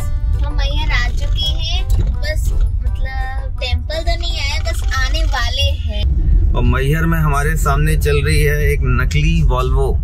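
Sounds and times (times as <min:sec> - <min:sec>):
car road rumble: 0:00.0 - 0:10.0.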